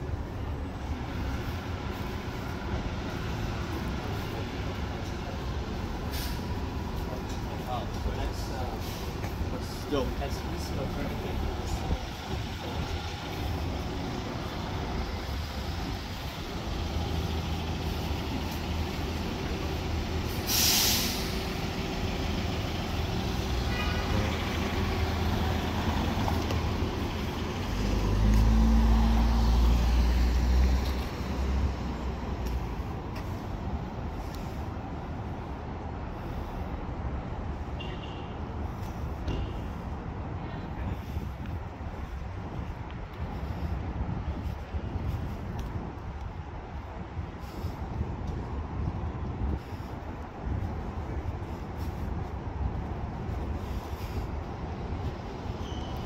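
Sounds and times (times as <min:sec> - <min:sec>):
loud low engine rumble: 0:00.0 - 0:36.7
street traffic: 0:00.0 - 0:56.0
air brakes hissing: 0:06.0 - 0:06.6, 0:08.7 - 0:09.3, 0:20.2 - 0:21.7.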